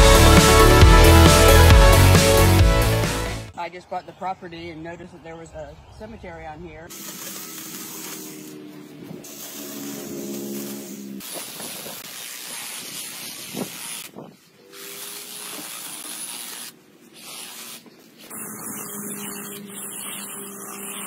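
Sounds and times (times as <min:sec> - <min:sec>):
hiss of cutting or blowing: 0:06.9 - 0:21.0
small gas engine running: 0:07.0 - 0:11.6, 0:18.2 - 0:21.0.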